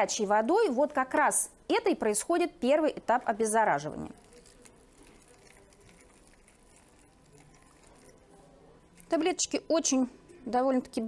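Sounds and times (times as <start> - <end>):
water trickling from kettle: 3.8 - 8.6.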